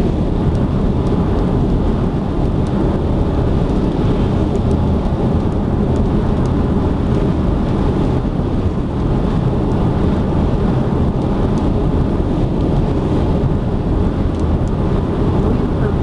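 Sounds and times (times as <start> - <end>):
car cabin road rumble: 0.0 - 16.0.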